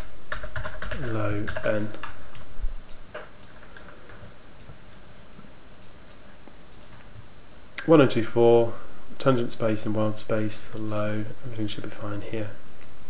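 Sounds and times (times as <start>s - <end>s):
faint steady hiss: 0.0s - 13.0s.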